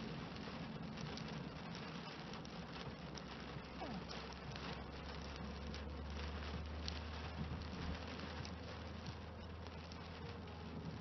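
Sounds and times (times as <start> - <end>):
car driving on wet road: 0.0 - 11.0
rain patter on windscreen: 0.0 - 11.0.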